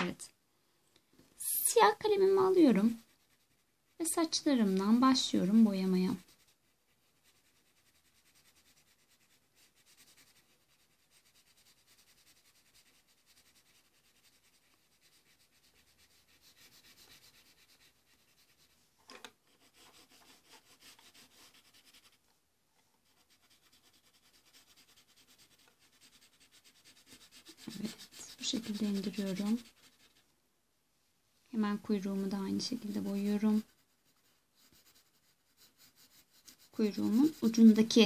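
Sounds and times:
pencil scratching on paper: 1.4s - 18.8s, 19.4s - 22.2s, 23.0s - 30.2s, 31.8s - 38.0s.

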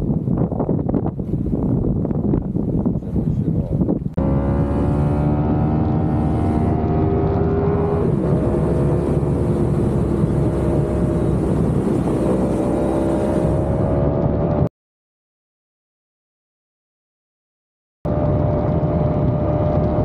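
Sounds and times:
wind buffeting microphone: 0.0s - 4.5s, 5.2s - 14.7s
motorcycle engine running: 4.2s - 14.4s.

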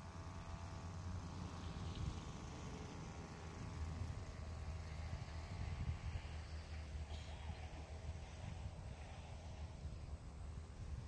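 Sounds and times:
distant small engine running: 0.0s - 11.0s.

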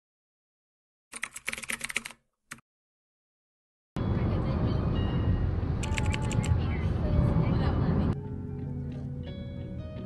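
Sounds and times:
muffled passenger voices: 5.8s - 8.2s.

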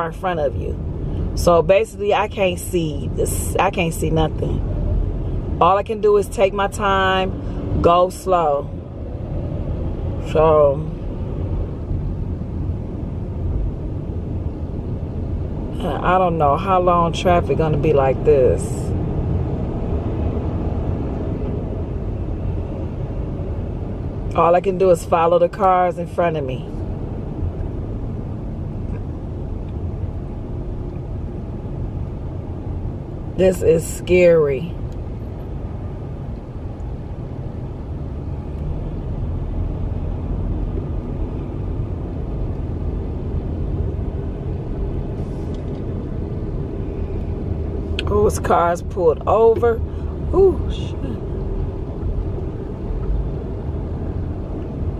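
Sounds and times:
car engine and road noise: 0.0s - 54.9s.

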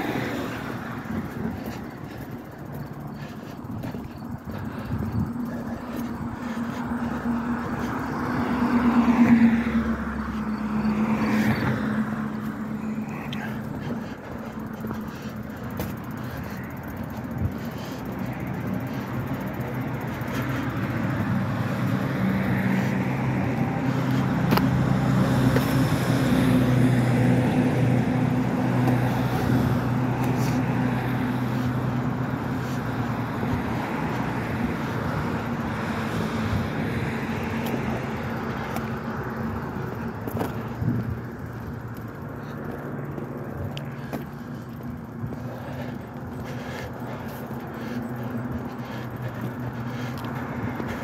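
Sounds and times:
steady road noise: 0.0s - 51.0s
vehicle engine hum: 0.0s - 51.0s.

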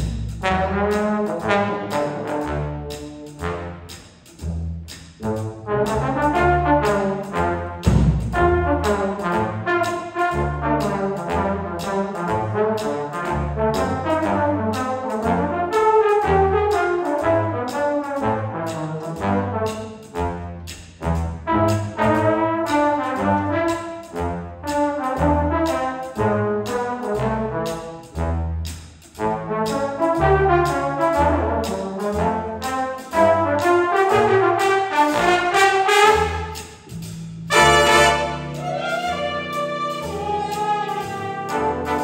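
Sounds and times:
trombone section: 0.0s - 4.0s, 5.2s - 28.6s, 29.2s - 36.9s, 37.5s - 42.0s
drums keeping steady beat: 0.0s - 42.0s
jazz big band playing: 0.0s - 42.0s
walking bass line: 0.0s - 42.0s.

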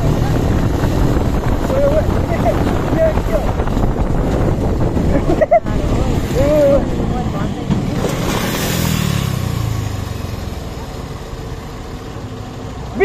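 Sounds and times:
motorcycle engine: 0.0s - 13.0s
truck diesel engine: 0.0s - 13.0s.

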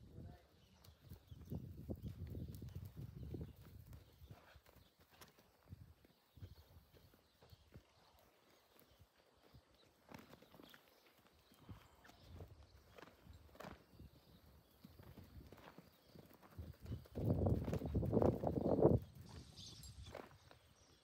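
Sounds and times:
hoofbeats on dry dirt: 0.7s - 21.0s.

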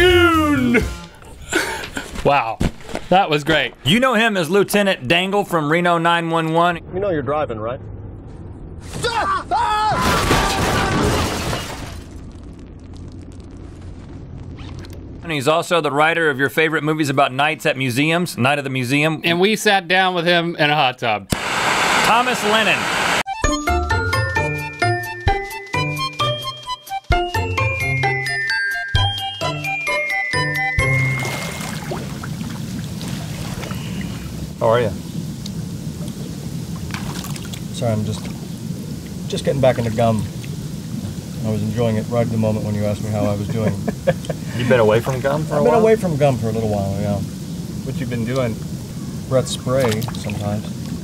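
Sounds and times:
hot tub jets churning water: 21.3s - 23.2s, 30.8s - 51.0s.

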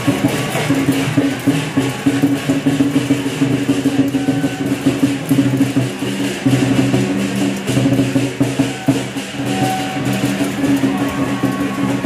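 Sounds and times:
fast clacking percussion: 0.0s - 12.0s.

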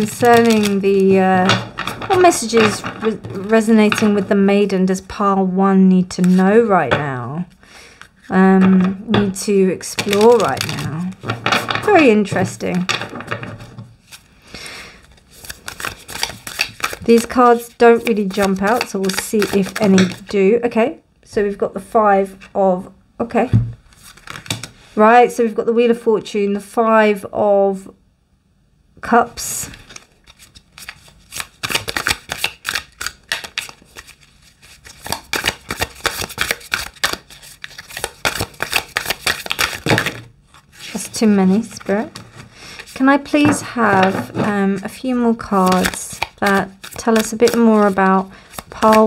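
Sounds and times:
cards shuffled by hand: 0.0s - 4.3s, 9.8s - 14.3s, 15.0s - 20.3s, 23.9s - 24.8s, 29.7s - 49.0s.

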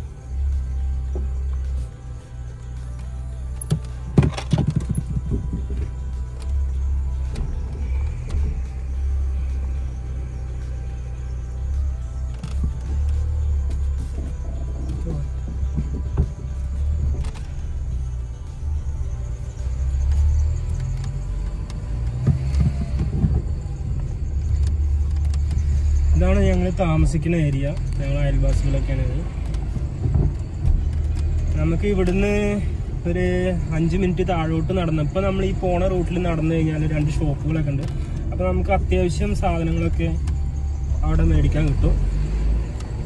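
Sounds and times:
car engine and road rumble: 0.0s - 43.0s
faint music: 0.0s - 43.0s.

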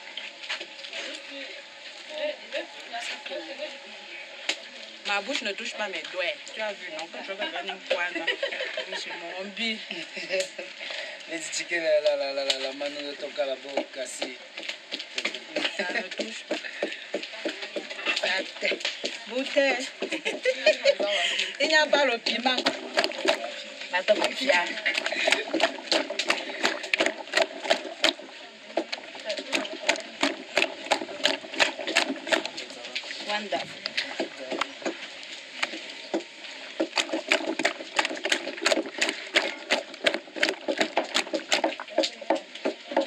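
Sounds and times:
woman talking: 5.0s - 10.1s, 15.7s - 16.5s, 17.4s - 22.8s, 23.9s - 25.5s, 33.2s - 33.8s
hands squelching pulp in water: 12.1s - 43.0s.

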